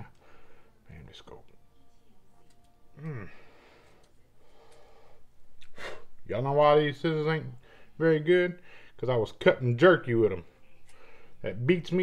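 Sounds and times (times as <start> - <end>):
man sighing: 3.0 - 3.7.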